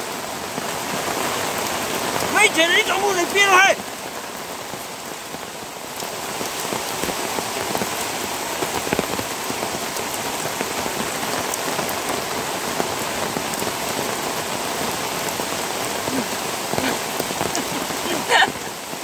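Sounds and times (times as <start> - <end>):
heavy rain falling: 0.0 - 19.0
sharp raindrop hits: 0.0 - 19.0.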